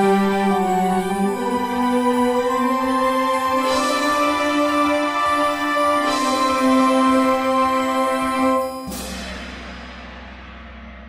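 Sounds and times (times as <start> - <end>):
metal percussion crash: 8.8 - 11.0.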